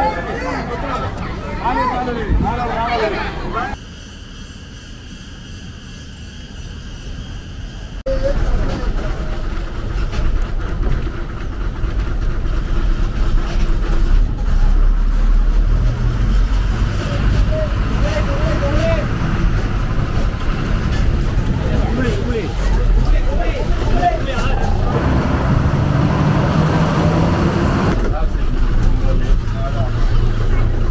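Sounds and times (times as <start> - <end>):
bus diesel engine rumbling: 0.0 - 30.9.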